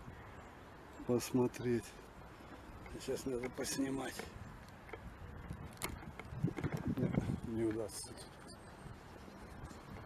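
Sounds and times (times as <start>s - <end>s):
camera rubbing and bumping: 4.8s - 8.6s.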